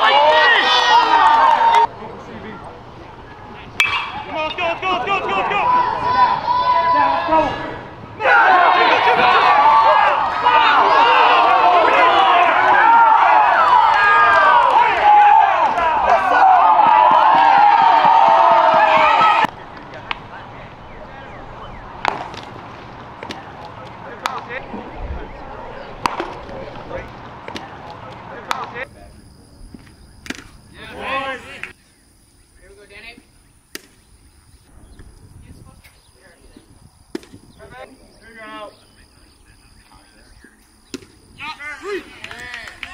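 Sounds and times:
crowd cheering and yelling: 0:00.0 - 0:22.0
baseball smacking into a mitt: 0:26.0 - 0:26.4, 0:29.8 - 0:30.6, 0:33.7 - 0:34.0, 0:37.1 - 0:37.4, 0:40.9 - 0:41.2.

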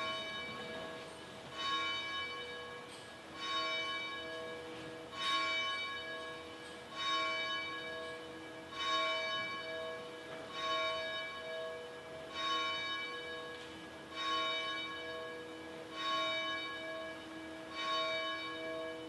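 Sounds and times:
church bell tolling: 0:00.0 - 0:19.0.

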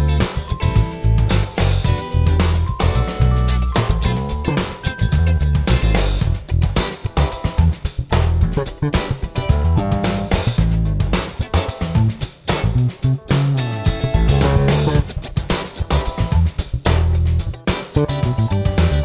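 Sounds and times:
drum kit groove: 0:00.0 - 0:19.0
funky electric bass: 0:00.0 - 0:19.0.

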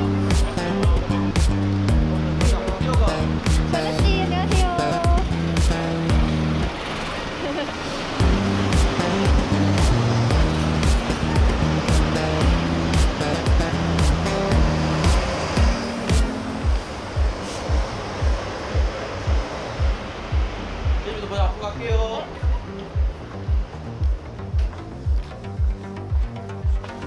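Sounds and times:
pop music with steady beat: 0:00.0 - 0:06.7, 0:08.2 - 0:27.0.

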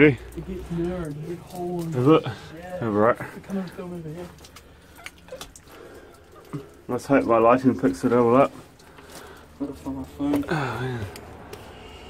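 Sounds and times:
man speaking: 0:00.0 - 0:04.5, 0:06.9 - 0:08.6.

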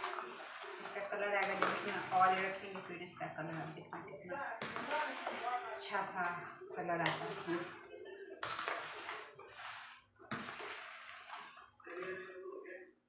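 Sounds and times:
vegetables tossed in plastic tub: 0:00.0 - 0:12.4
speech: 0:00.8 - 0:08.4, 0:11.8 - 0:13.0.

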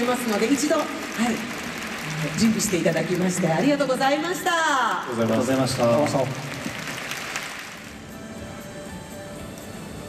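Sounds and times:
audience applause: 0:00.0 - 0:08.0
soft background music: 0:07.8 - 0:10.0.

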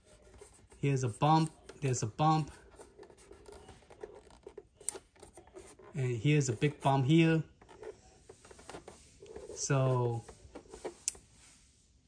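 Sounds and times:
fingertips scratching plastic: 0:00.0 - 0:11.2.

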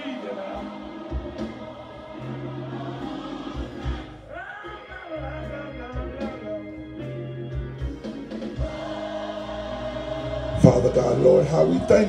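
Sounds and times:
choir singing gospel: 0:00.0 - 0:12.0
bass line: 0:05.2 - 0:12.0.

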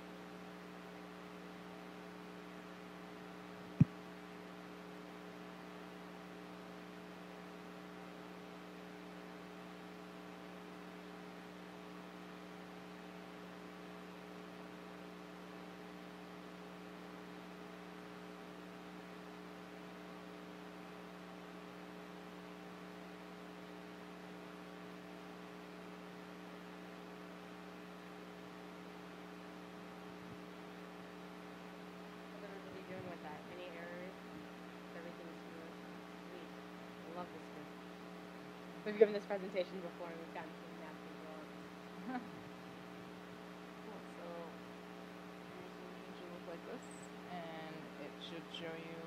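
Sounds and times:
electrical mains hum: 0:00.0 - 0:49.0.

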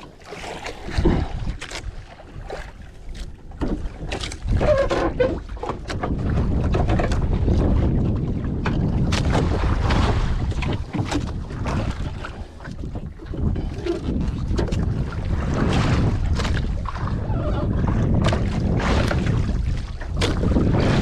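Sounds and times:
water washing against boat hull: 0:00.0 - 0:21.0
wind buffeting microphone: 0:00.7 - 0:02.8, 0:03.4 - 0:21.0.

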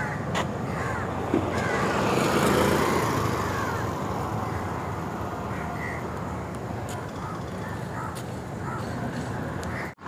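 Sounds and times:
motorbike passing: 0:00.0 - 0:10.0
traffic hum: 0:00.0 - 0:10.0.

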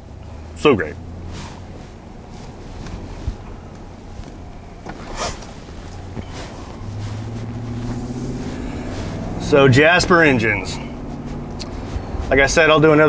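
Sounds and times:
car engine drone: 0:00.0 - 0:13.0
road noise: 0:00.0 - 0:13.0.

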